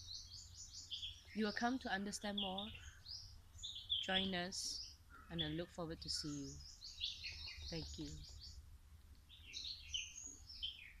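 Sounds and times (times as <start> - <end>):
birds chirping and singing: 0.0 - 11.0.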